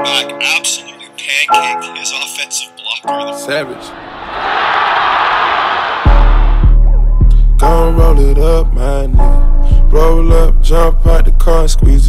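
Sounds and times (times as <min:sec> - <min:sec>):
stadium crowd cheering: 0:03.9 - 0:06.8.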